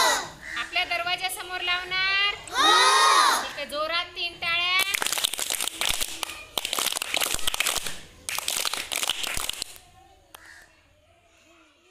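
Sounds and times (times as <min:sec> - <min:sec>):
children clapping: 0:04.8 - 0:09.8.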